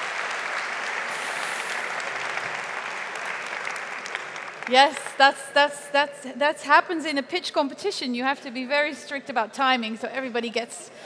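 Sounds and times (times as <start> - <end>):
audience applauding: 0.0 - 5.3.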